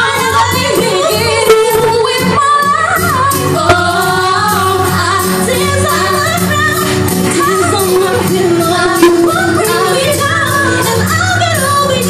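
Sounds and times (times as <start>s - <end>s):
women singing into microphones: 0.0s - 12.0s
pop accompaniment: 1.3s - 2.6s, 3.5s - 4.9s, 7.6s - 10.1s.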